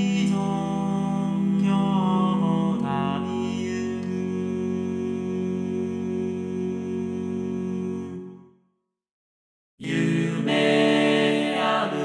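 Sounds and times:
synthesized male chorus chord: 0.0s - 8.4s, 9.8s - 12.0s.

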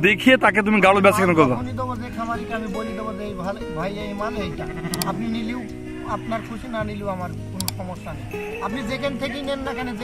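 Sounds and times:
background music: 0.0s - 10.0s
sheep bleating: 4.3s - 6.6s.

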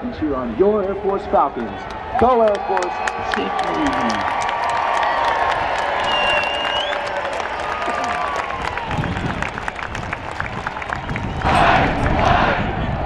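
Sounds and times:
stadium crowd cheering and clapping: 0.0s - 13.0s
whistles: 6.0s - 7.1s.

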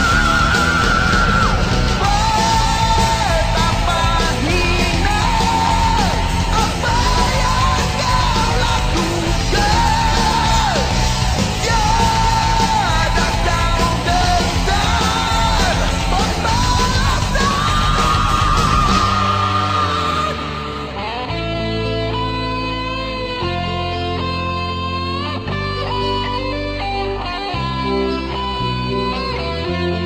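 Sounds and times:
electric band playing: 0.0s - 30.0s
rock song with strained vocal: 0.0s - 30.0s.

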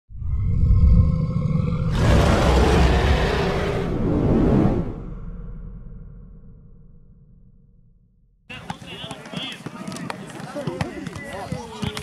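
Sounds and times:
deep rumble: 0.1s - 8.5s
loud rushing whoosh: 1.9s - 8.0s.

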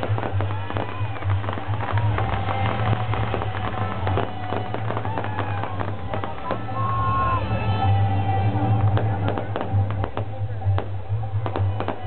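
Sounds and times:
fireworks popping and crackling: 0.0s - 12.0s
fireworks whistling: 0.0s - 12.0s.

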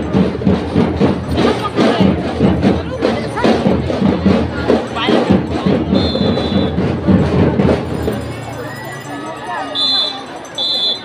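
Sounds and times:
drums beating marching rhythm: 0.0s - 11.0s.

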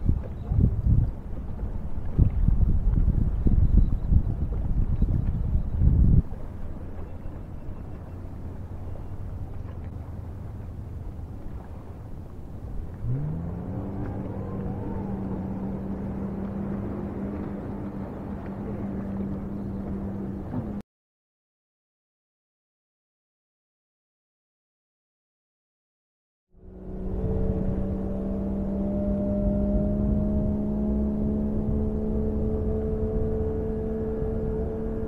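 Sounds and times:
motorboat engine: 0.0s - 20.8s, 26.6s - 35.0s
wind buffeting microphone: 0.0s - 20.8s, 26.6s - 35.0s.

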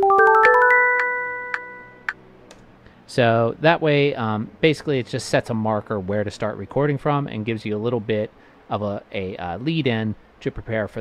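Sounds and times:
chord ringing: 0.0s - 2.2s
metronome clicks: 0.0s - 2.2s.

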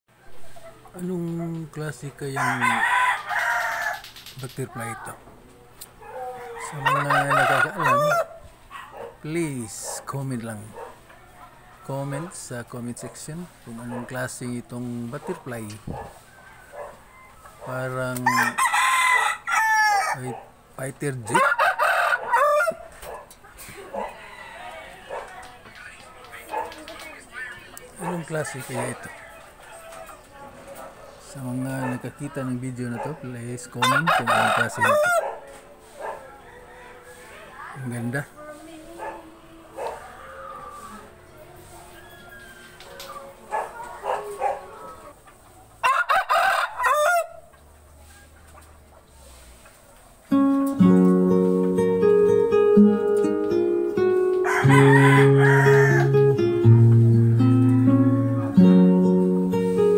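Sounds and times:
rooster crowing: 2.2s - 4.2s, 6.0s - 9.1s, 16.1s - 20.4s, 21.3s - 23.0s, 23.8s - 25.4s, 33.7s - 35.4s, 36.2s - 37.8s, 39.7s - 45.2s, 45.8s - 47.5s, 54.4s - 58.6s
short rooster calls: 54.5s - 56.1s.

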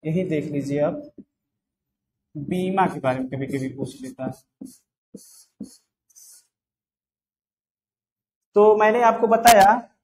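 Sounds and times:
marker scratching on whiteboard: 2.4s - 6.8s.

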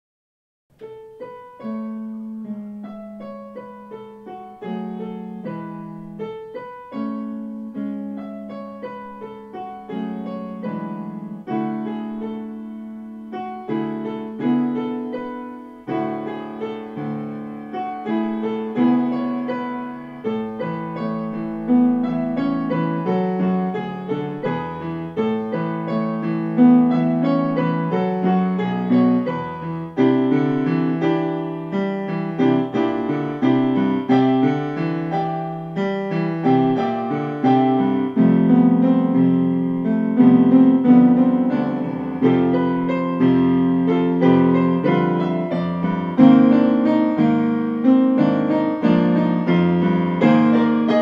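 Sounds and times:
solo piano melody: 0.7s - 51.0s.

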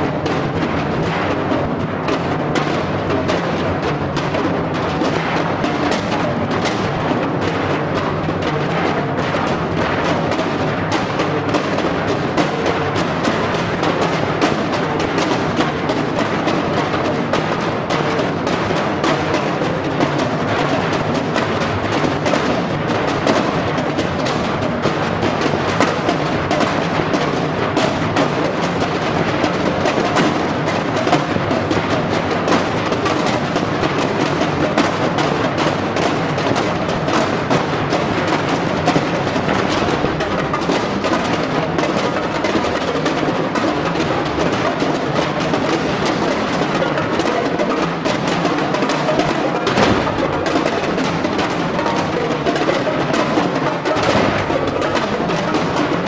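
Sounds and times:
percussion ensemble playing: 0.0s - 56.0s.

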